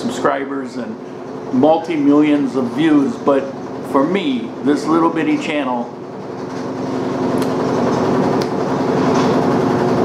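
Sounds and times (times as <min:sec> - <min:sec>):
loud machine hum: 0:00.0 - 0:10.0.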